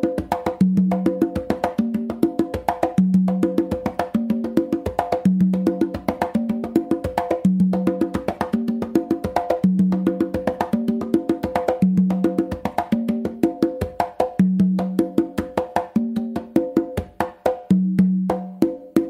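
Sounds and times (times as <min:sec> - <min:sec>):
congas played by hand: 0:00.0 - 0:19.0.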